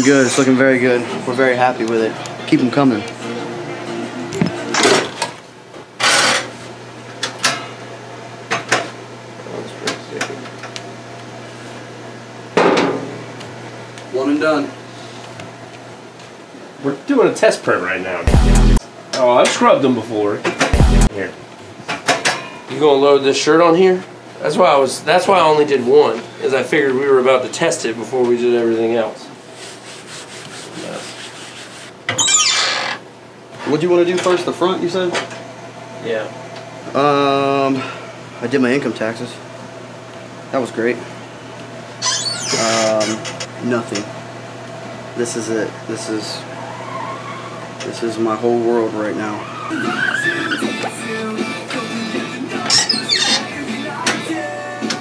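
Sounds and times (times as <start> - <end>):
hand rubbing cloth: 29.4 - 32.0
squeak falling in pitch: 32.1 - 33.0, 42.0 - 42.9, 52.7 - 53.5.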